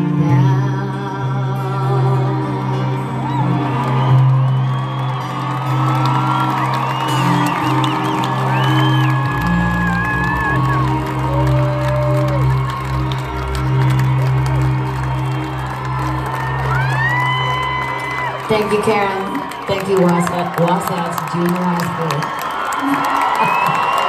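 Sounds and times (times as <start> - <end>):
concert crowd cheering: 1.6 - 24.0
live rock band playing: 1.7 - 19.1.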